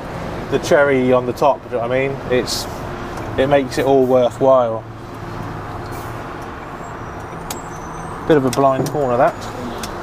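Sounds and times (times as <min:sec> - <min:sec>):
diesel engine running: 0:00.0 - 0:10.0
road noise: 0:00.0 - 0:10.0.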